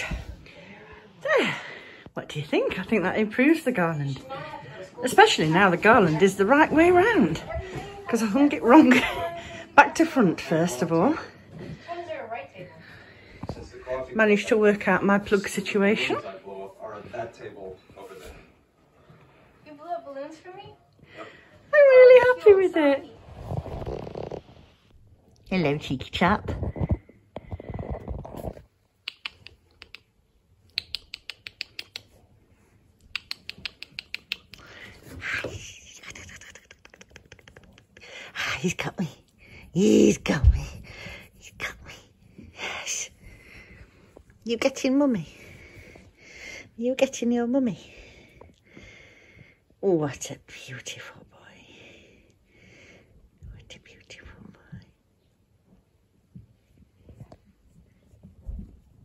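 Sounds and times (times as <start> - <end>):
person whispering: 33.2 - 43.2.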